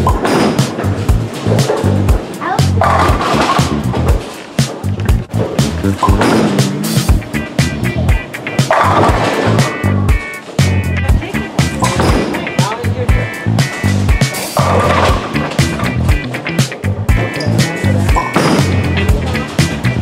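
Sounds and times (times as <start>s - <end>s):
music with a steady beat: 0.0s - 20.0s
bowling pins crashing: 2.8s - 4.3s, 8.6s - 9.8s, 14.6s - 15.6s.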